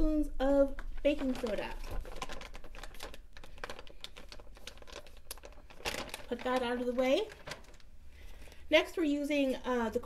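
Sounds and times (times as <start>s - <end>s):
paper bag crinkling: 0.8s - 8.6s.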